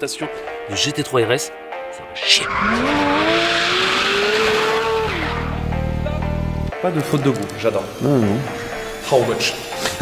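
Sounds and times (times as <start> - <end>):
car engine revving high: 2.2 - 6.6.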